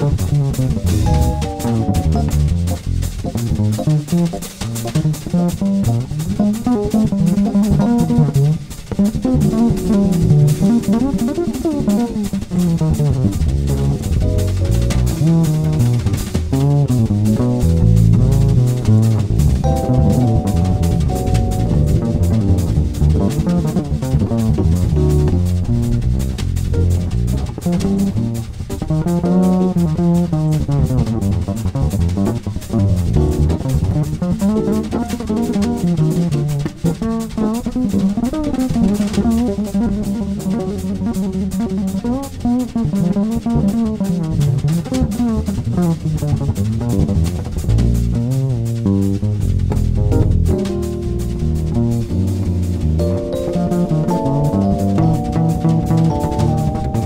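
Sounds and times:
upright bass line: 0:00.0 - 0:38.1, 0:42.8 - 0:57.0
jazz drums: 0:00.0 - 0:57.0.

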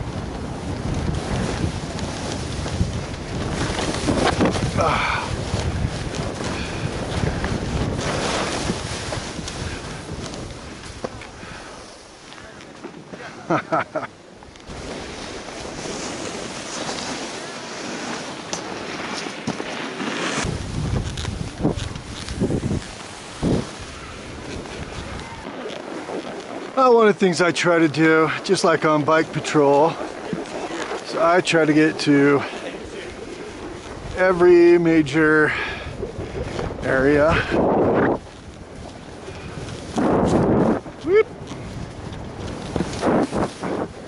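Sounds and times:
wind buffeting microphone: 0:00.0 - 0:12.2, 0:20.4 - 0:44.0
skis running over snow: 0:00.0 - 0:44.0.

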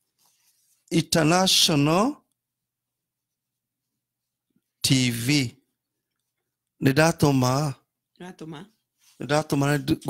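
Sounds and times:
person speaking: 0:08.4 - 0:10.0.

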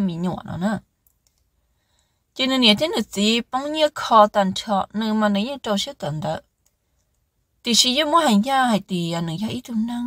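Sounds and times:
woman narrating: 0:00.0 - 0:00.8, 0:02.4 - 0:06.5, 0:07.6 - 0:10.0
faint clicks: 0:01.0 - 0:01.5, 0:06.5 - 0:07.3.

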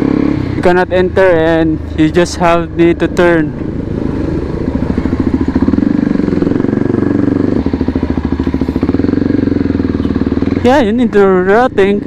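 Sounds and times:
motorcycle engine riding: 0:00.0 - 0:12.0.

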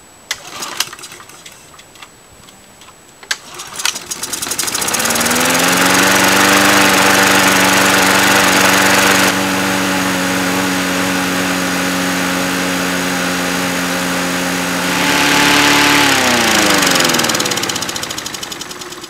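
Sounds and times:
lawn mower engine running: 0:03.3 - 0:19.0.

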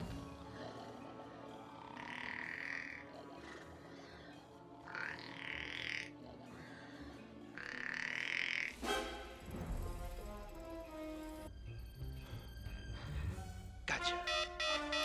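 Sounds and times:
orchestral film music: 0:00.0 - 0:08.0, 0:08.7 - 0:15.0.

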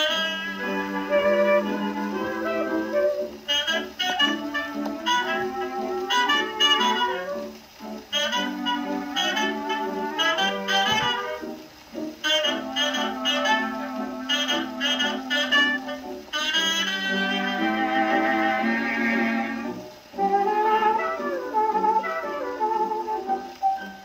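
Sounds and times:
dance band music on phonograph: 0:00.0 - 0:24.0.

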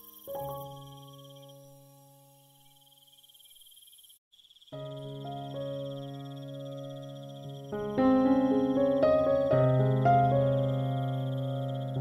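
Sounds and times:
crickets chirring: 0:00.0 - 0:12.0
soft slow piano music: 0:00.2 - 0:02.9, 0:04.8 - 0:12.0.

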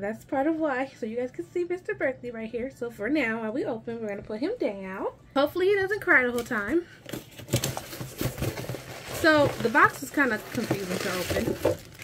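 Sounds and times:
cardboard flaps scraping: 0:07.3 - 0:11.9.

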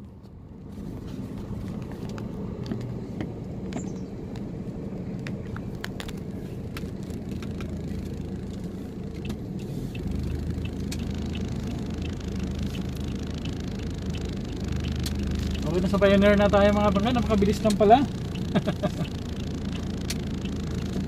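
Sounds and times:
vehicle engine and road rumble: 0:00.0 - 0:21.0.

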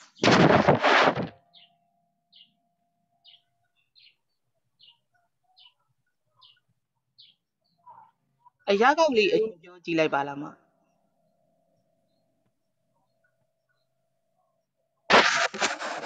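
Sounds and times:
faint high chirp: 0:01.4 - 0:08.7.

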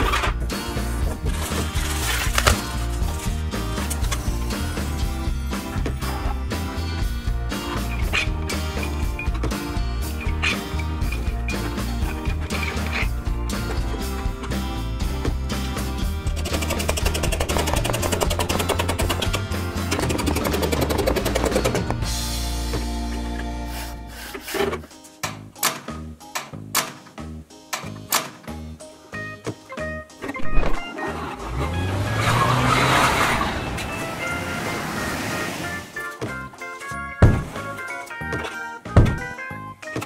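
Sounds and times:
background music: 0:00.0 - 0:40.0
racing car engine rising: 0:30.4 - 0:36.0.

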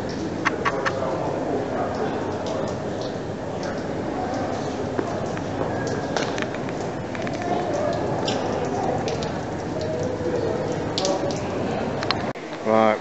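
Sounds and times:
faint distant voices: 0:00.0 - 0:12.3.

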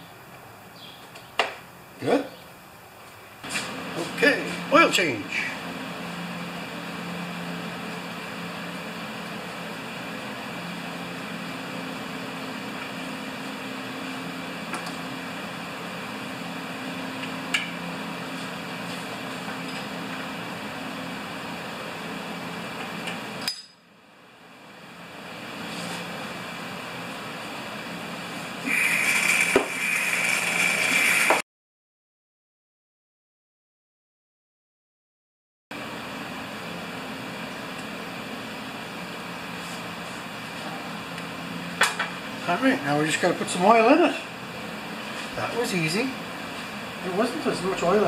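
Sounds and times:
oil extractor hissing: 0:28.6 - 0:31.4
rush of air and oil: 0:28.6 - 0:31.4.

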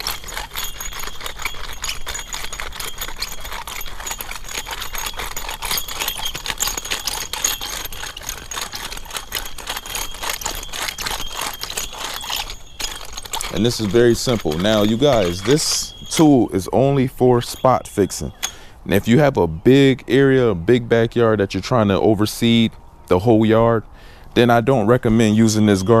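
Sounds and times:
metal tines clicking and rattling: 0:00.0 - 0:22.8, 0:24.4 - 0:26.0.

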